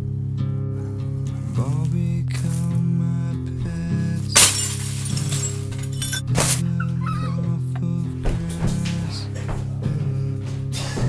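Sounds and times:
slow song playing: 0:00.0 - 0:11.0
glass shattering crash: 0:04.2 - 0:06.6.

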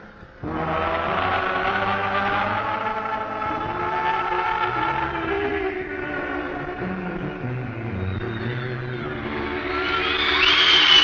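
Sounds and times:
concert band playing held chords: 0:00.0 - 0:11.0.

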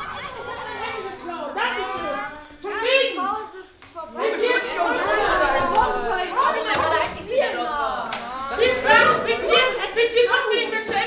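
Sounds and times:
young voices chattering: 0:00.0 - 0:11.0.

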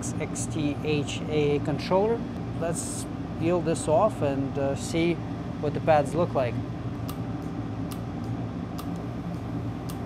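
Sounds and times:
low equipment hum: 0:00.0 - 0:10.0.

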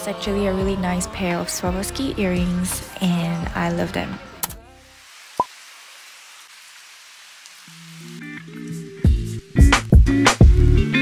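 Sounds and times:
heavy rain on foliage: 0:04.9 - 0:08.7.

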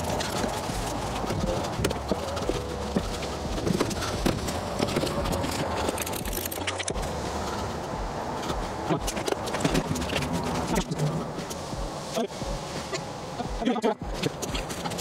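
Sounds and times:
low wind rumble: 0:00.0 - 0:15.0.

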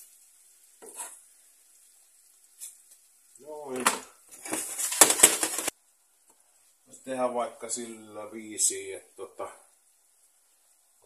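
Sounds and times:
onions sizzling in oil: 0:00.0 - 0:11.0.

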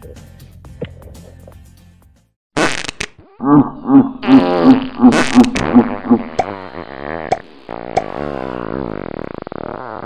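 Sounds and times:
person making buzzing noises: 0:02.6 - 0:10.0.

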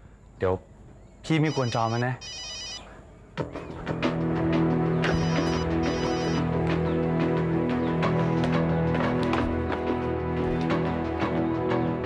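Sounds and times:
phone ringing electronic trill: 0:01.5 - 0:02.8, 0:05.0 - 0:06.5.

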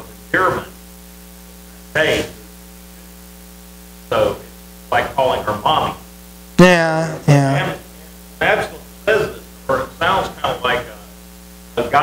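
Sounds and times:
electrical mains hum: 0:00.0 - 0:12.0
short bursts of a voice: 0:06.6 - 0:07.8.

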